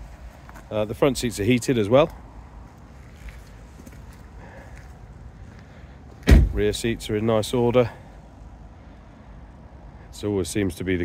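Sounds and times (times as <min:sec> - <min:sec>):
outdoor background rumble: 0:00.0 - 0:11.0.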